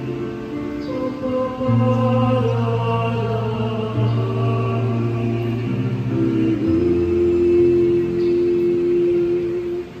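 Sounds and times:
small choir singing a chord: 0.7s - 10.0s.

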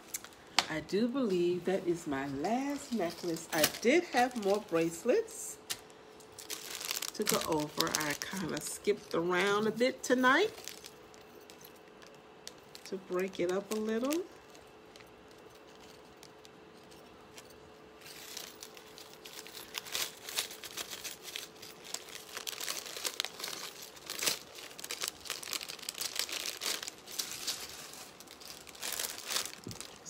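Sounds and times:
faint steady hum: 0.0s - 30.0s
packaging crinkling and rustling: 0.0s - 30.0s.

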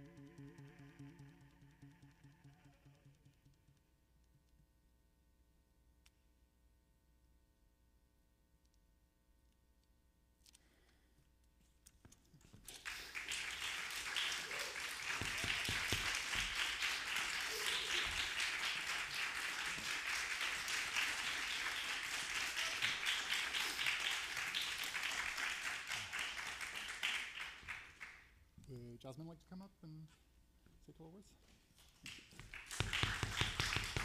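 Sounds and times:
audience applauding: 12.7s - 28.3s, 32.0s - 34.0s.

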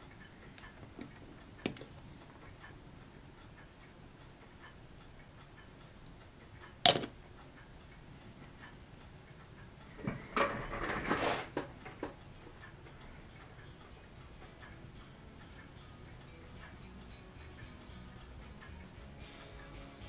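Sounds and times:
clock ticking: 0.0s - 20.0s
sharp click: 6.8s - 7.2s
tools knocking and rustling: 10.0s - 12.2s.

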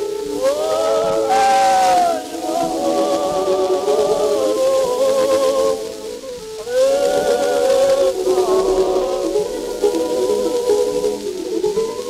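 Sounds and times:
record hiss: 0.0s - 12.0s
string orchestra on old record: 0.0s - 12.0s.

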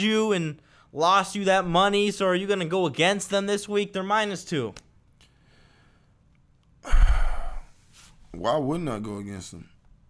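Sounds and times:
man sighing into a microphone: 6.8s - 7.8s.

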